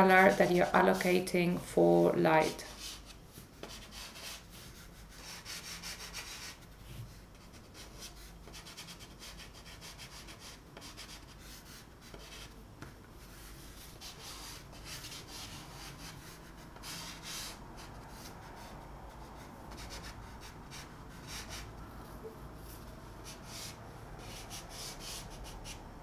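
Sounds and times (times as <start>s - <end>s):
pastel scratching on paper: 2.7s - 12.5s, 13.2s - 21.7s, 23.2s - 26.0s.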